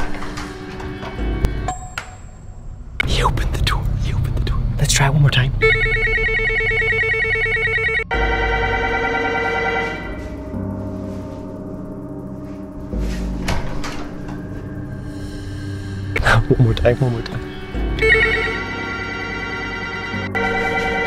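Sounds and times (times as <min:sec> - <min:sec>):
electronic doorbell chime: 0:05.6 - 0:10.2, 0:18.0 - 0:18.9.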